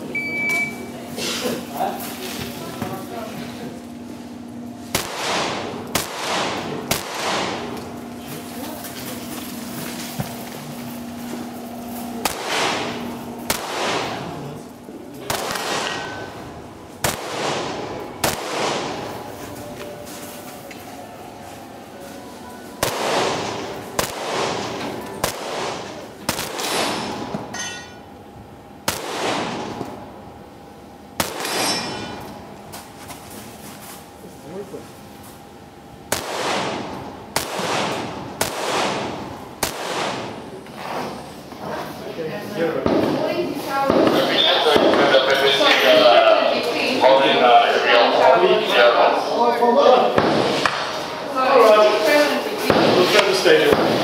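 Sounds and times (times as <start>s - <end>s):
rifle shots echoing: 4.9s - 7.7s, 12.2s - 14.4s, 15.3s - 16.3s, 17.0s - 19.2s, 22.8s - 27.3s, 28.8s - 29.8s, 31.2s - 31.8s, 36.1s - 40.4s.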